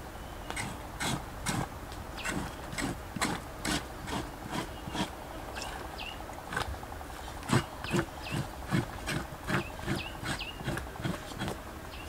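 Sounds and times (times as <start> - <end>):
knife scraping hide: 0.6 - 5.8, 6.5 - 11.6.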